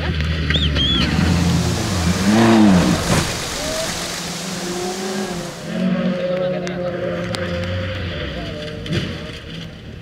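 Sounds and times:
rally car engine passing: 0:00.3 - 0:09.1
tyres hissing on gravel: 0:01.0 - 0:05.9.

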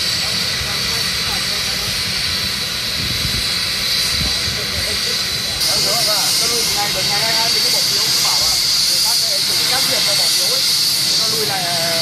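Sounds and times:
aircraft turbine engines whining: 0:00.0 - 0:12.0
faint voices: 0:00.0 - 0:12.0.

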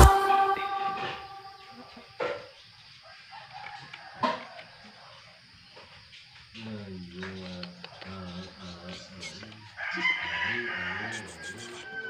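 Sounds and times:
music with gliding notes: 0:00.0 - 0:01.8
rooster crowing: 0:09.8 - 0:12.0.

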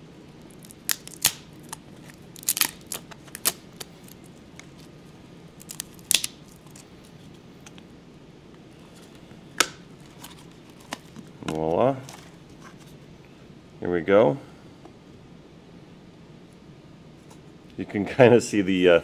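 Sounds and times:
plastic cracking and popping: 0:00.5 - 0:04.9, 0:05.6 - 0:06.8.

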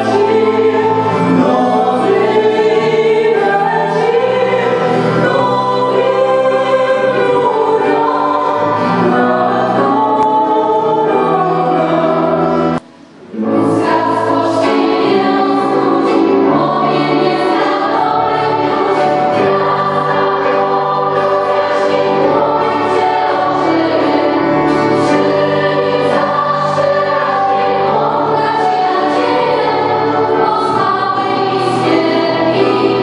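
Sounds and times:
mixed choir singing a carol: 0:00.0 - 0:33.0.

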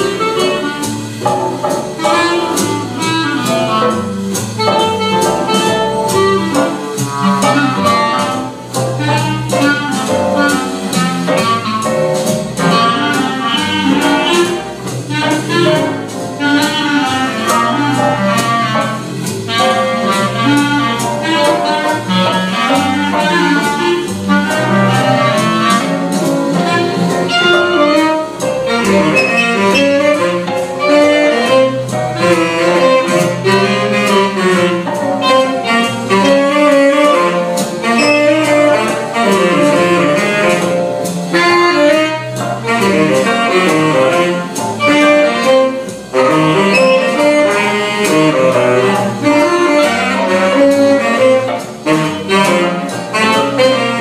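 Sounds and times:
clarinets and saxophone jazz: 0:00.0 - 0:54.0.

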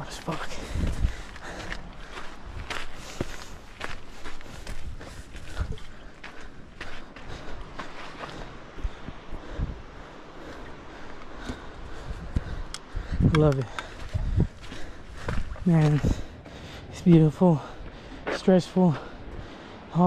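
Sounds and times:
footsteps on gravel trail: 0:00.0 - 0:19.9.

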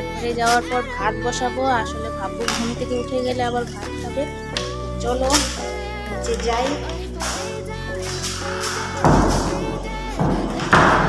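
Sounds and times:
pop song in background: 0:00.0 - 0:11.0
loud thuds: 0:08.1 - 0:11.0.

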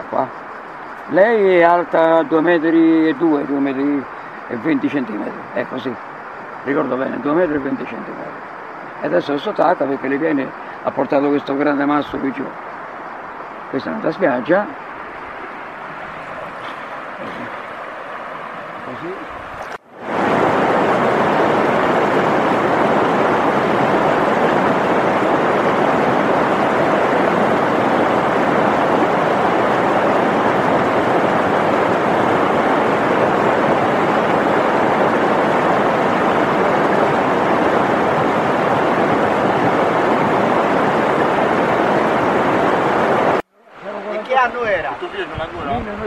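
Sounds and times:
river water rushing: 0:00.0 - 0:45.8.

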